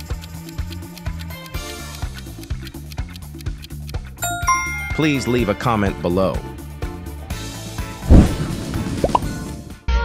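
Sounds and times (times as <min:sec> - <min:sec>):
background music: 0:04.2 - 0:06.4.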